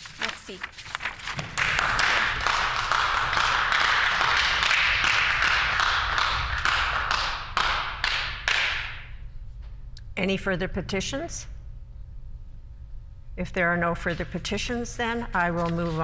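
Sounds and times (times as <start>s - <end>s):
crowd applauding: 1.4s - 8.8s.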